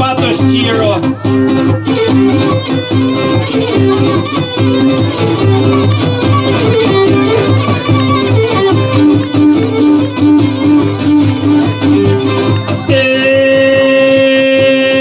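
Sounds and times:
plucked lutes: 0:00.0 - 0:15.0
bowed lyra melody: 0:00.6 - 0:13.2.

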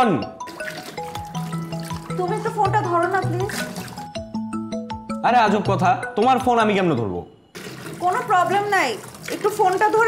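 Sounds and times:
background music melody: 0:00.0 - 0:10.0.

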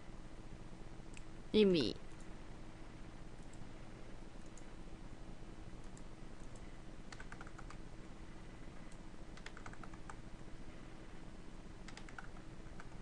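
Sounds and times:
faint electrical hum: 0:00.0 - 0:13.0
computer keyboard keystrokes: 0:05.8 - 0:07.8, 0:08.8 - 0:10.2, 0:11.8 - 0:13.0.

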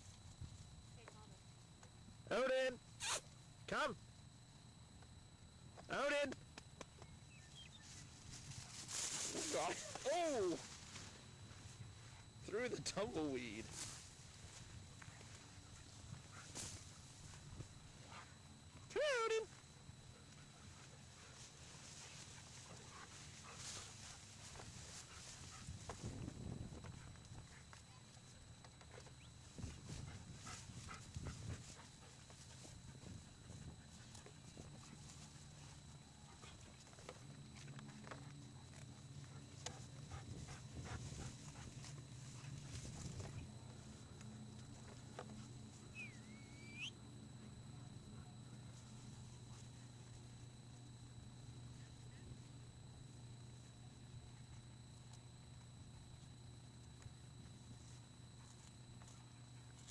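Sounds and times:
steady low hum: 0:00.0 - 0:59.9
rustling through brush: 0:07.8 - 0:12.4, 0:20.6 - 0:26.3
weeds rustling: 0:07.9 - 0:11.6.

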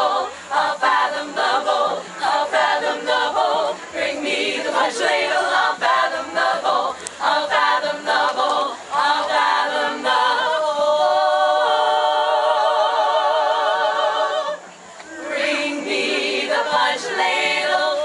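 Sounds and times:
women singing in harmony: 0:00.0 - 0:18.0.

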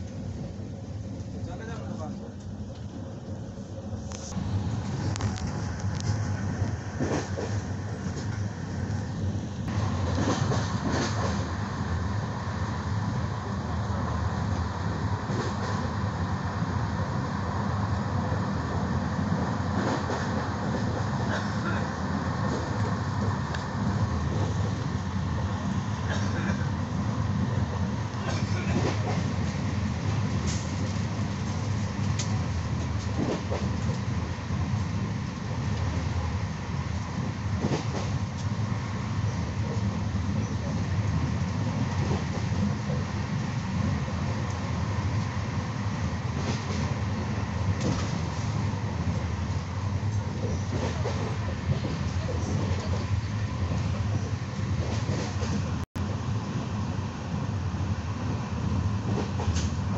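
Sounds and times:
train wheels rumbling on track: 0:00.0 - 0:59.9.

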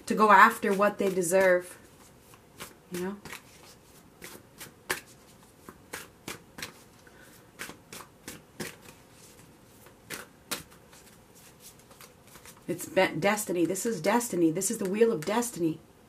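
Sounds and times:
cards being shuffled: 0:00.5 - 0:12.7.

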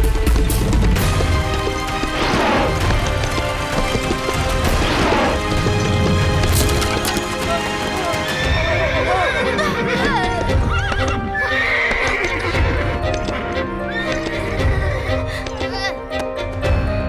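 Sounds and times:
hooves clip-clopping: 0:00.0 - 0:16.6
background music: 0:00.0 - 0:17.0
horse whinny: 0:08.1 - 0:15.1.

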